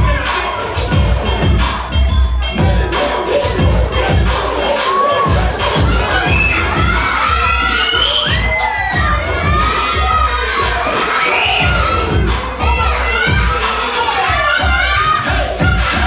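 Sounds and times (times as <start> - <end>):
children cheering and shouting: 0.0 - 1.7, 2.6 - 16.0
hip-hop dance track: 0.0 - 16.0.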